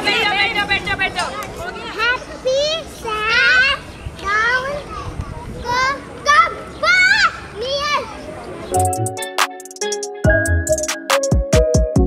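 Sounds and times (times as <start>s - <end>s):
children's chatter: 0.0s - 8.8s
children shouting: 2.5s - 8.4s.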